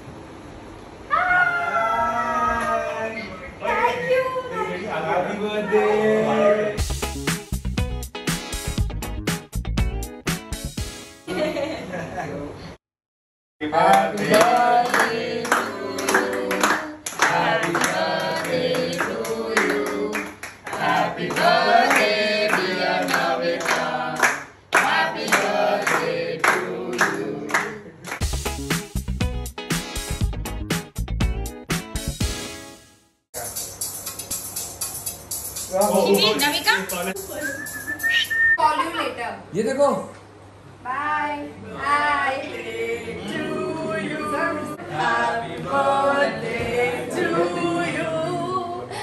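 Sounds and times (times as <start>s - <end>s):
long high-pitched excited scream: 1.1s - 3.2s
group of people singing: 13.6s - 27.9s, 41.6s - 49.0s
people clapping along: 13.8s - 28.3s.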